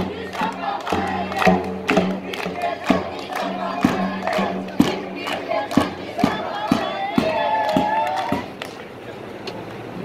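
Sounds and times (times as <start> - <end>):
drum beating: 0.0 - 8.6
group of voices chanting: 0.0 - 8.6.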